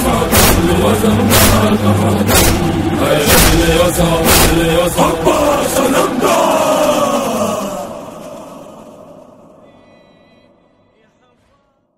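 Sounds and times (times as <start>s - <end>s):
crowd chanting with music: 0.0s - 9.6s.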